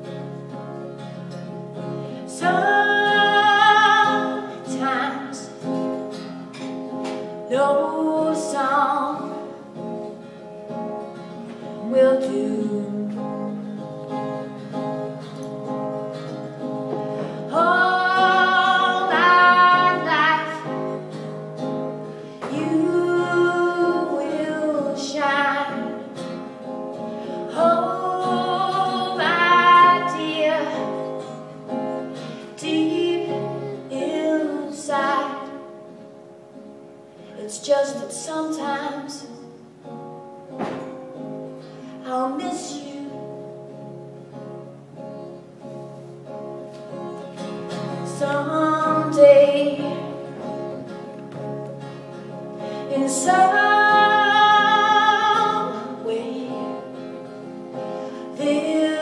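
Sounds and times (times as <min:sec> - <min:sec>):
acoustic guitar chords: 0:00.0 - 0:59.0
woman singing: 0:02.2 - 0:06.0, 0:07.3 - 0:09.8, 0:11.6 - 0:14.4, 0:16.3 - 0:21.4, 0:22.3 - 0:36.0, 0:37.2 - 0:39.7, 0:41.9 - 0:43.8, 0:47.7 - 0:51.0, 0:52.6 - 0:59.0.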